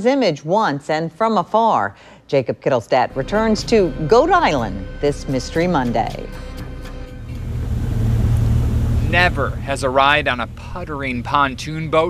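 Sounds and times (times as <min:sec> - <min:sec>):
outboard motor running: 0:07.2 - 0:12.0.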